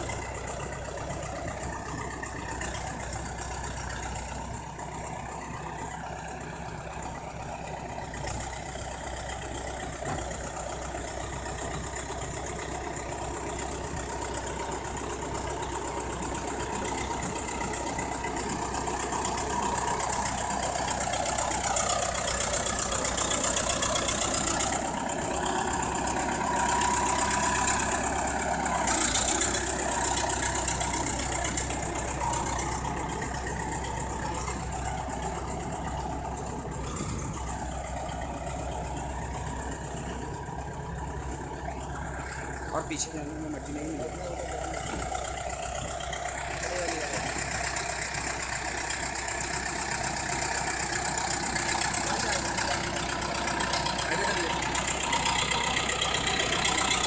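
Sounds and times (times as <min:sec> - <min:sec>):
bulldozer diesel engine under load: 0:00.0 - 0:57.0.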